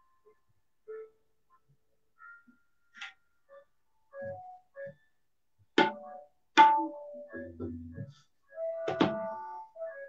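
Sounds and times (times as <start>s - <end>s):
tabla strokes: 8.8s - 9.5s.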